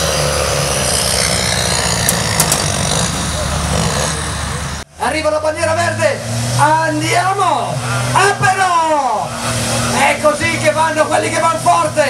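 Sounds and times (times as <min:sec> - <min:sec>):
truck engine running under load: 0:00.0 - 0:04.9
man's voice over a loudspeaker: 0:05.0 - 0:12.0.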